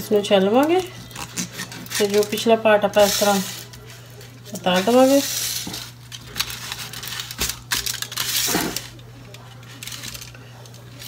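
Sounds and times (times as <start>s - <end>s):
aluminium foil crinkling: 0.0s - 11.0s.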